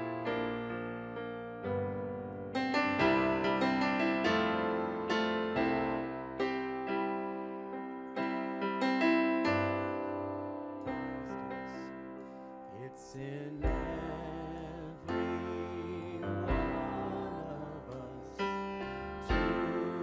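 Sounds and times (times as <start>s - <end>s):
keyboard playing piano chords: 0.0s - 20.0s.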